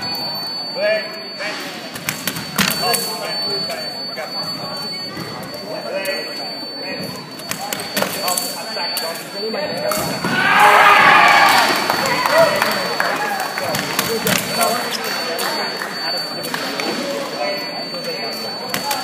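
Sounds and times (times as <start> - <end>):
loud drawn-out shout: 10.3 - 11.8.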